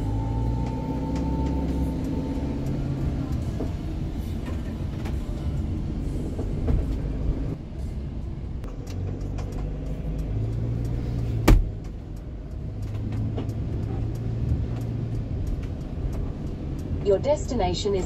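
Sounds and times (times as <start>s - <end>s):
vehicle engine and tyre noise: 0.0s - 18.0s
sharp thump: 11.4s - 11.7s.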